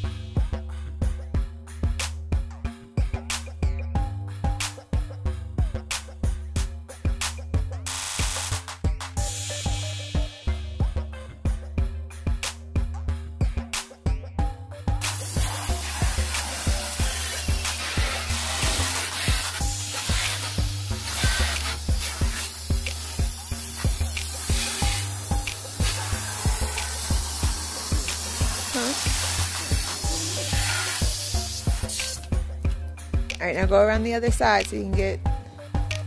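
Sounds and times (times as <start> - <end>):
background music with beat: 0.0 - 36.0
hose spraying water on car: 7.9 - 8.6, 15.0 - 32.3.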